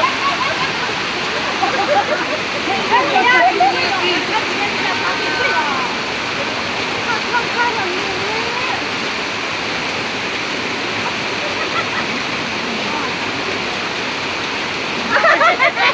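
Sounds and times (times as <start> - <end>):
faint voices: 0.0 - 15.4
heavy rain: 0.0 - 15.9
water running across street: 0.0 - 15.9.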